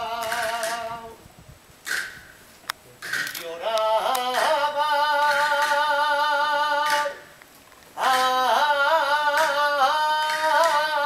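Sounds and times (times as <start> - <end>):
solo voice singing: 0.0 - 1.2, 3.5 - 7.3, 8.0 - 11.0.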